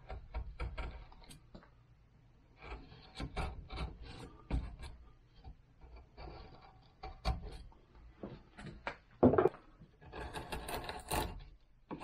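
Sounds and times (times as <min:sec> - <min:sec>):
carving tool scraping bark: 0:00.0 - 0:01.6, 0:02.4 - 0:07.8, 0:09.9 - 0:12.0.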